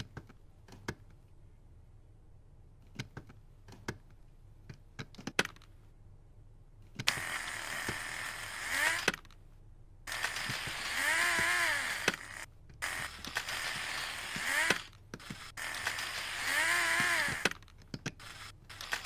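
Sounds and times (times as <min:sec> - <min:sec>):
plastic gear teeth clicking: 0:06.9 - 0:09.4, 0:10.1 - 0:19.0
electric motor whirring: 0:07.0 - 0:09.2, 0:10.1 - 0:19.0.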